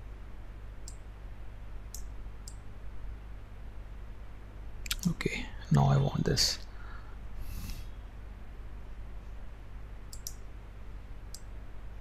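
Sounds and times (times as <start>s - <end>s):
steady low hum: 0.0s - 12.0s
mouse button clicks: 10.1s - 10.4s.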